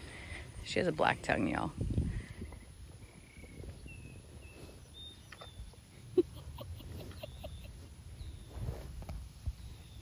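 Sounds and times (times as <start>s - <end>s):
low wind rumble: 0.0s - 10.0s
distant birds whistling: 2.2s - 6.2s, 7.1s - 8.7s.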